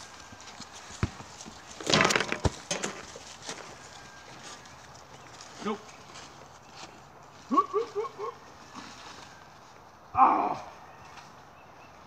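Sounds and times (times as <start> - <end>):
crackling rustle of dry brush: 0.0 - 12.0.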